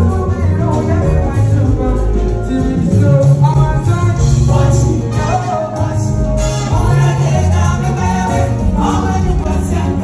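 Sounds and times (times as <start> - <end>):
loud band music: 0.0 - 10.0
voices singing along: 0.0 - 10.0.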